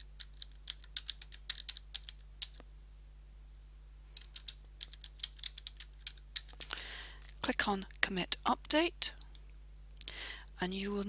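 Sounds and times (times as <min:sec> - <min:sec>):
computer keyboard typing: 0:00.0 - 0:02.6, 0:04.2 - 0:06.7.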